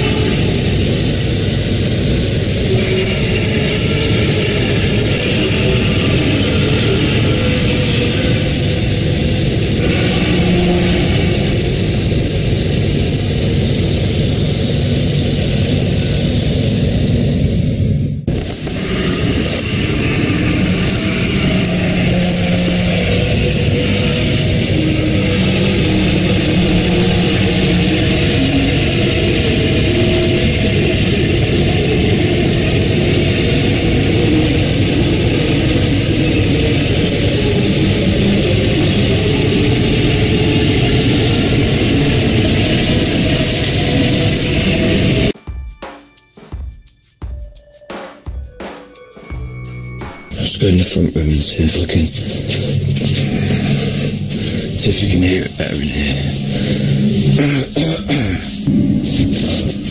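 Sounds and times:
loud droning rumble: 0.0 - 45.4, 49.4 - 59.9.

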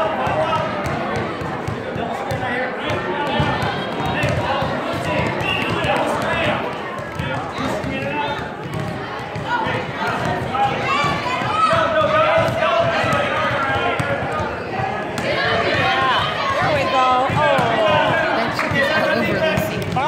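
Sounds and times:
people's voices: 0.0 - 20.0
basketball bouncing on gym floor: 0.2 - 20.0.

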